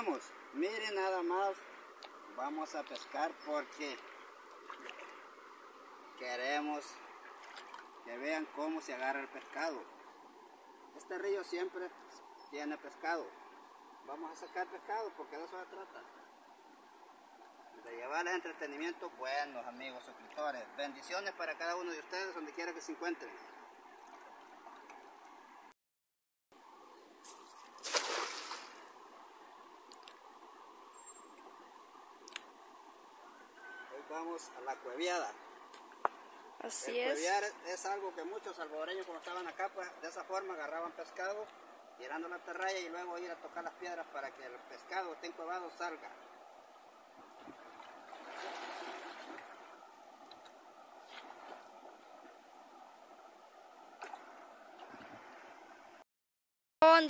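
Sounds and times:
water splashing and sloshing: 4.6s - 5.3s, 7.1s - 8.0s, 27.8s - 28.8s, 47.4s - 49.7s
net splashing on water: 27.8s - 28.8s.

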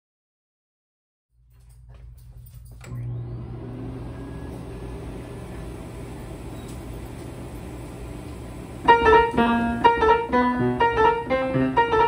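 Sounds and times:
player piano mechanism humming: 2.8s - 12.0s.

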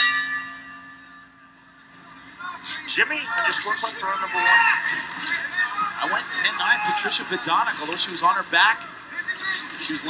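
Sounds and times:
boxing round bell ringing: 0.0s - 1.8s.

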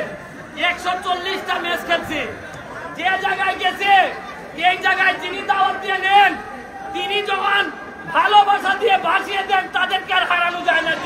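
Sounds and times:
man talking into a microphone: 0.0s - 11.0s
people chattering: 0.0s - 11.0s.

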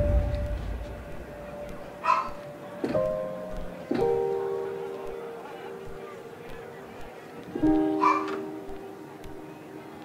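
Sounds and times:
slow piano notes: 0.0s - 10.0s.

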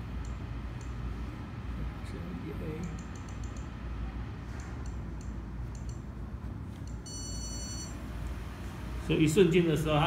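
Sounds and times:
electronic beep: 7.0s - 7.9s.

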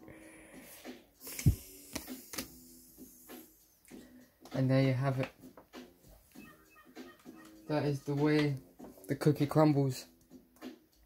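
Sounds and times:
cards clicking and flicking: 1.2s - 2.6s.

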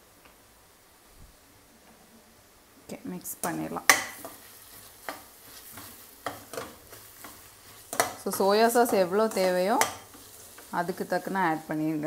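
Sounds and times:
vegetables sizzling in a pan: 2.3s - 12.0s
spatula scraping a pan: 3.9s - 11.8s.

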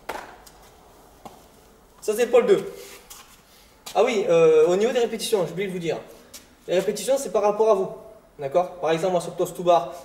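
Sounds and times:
feet landing on concrete: 0.0s - 1.5s.

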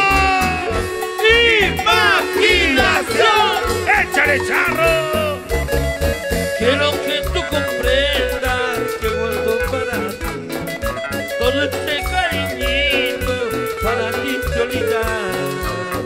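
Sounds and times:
band playing latin dance music: 0.0s - 16.0s.

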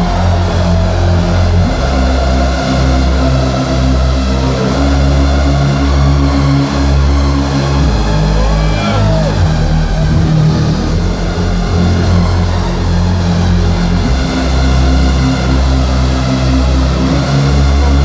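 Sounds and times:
heavy sustained bass line: 0.0s - 18.0s
loud electronic music: 0.0s - 18.0s.

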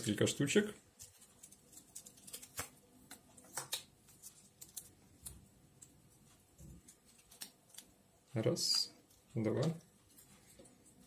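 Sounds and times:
paper rustling: 0.9s - 5.4s
paper strips tearing: 1.0s - 5.4s.

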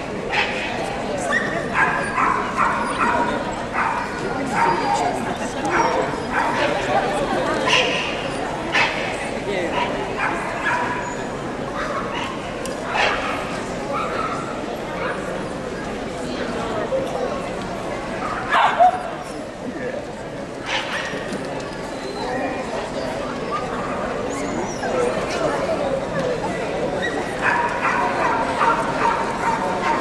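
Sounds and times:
crowd chatter: 0.0s - 30.0s
dogs barking and yipping: 1.3s - 6.8s, 27.0s - 30.0s.

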